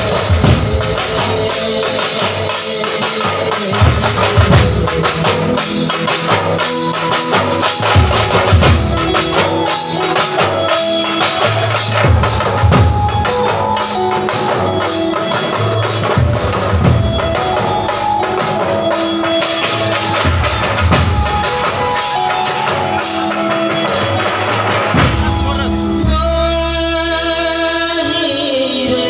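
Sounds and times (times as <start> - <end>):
loud drumming on marching drums: 0.0 - 25.6
melody of held notes: 0.0 - 29.0.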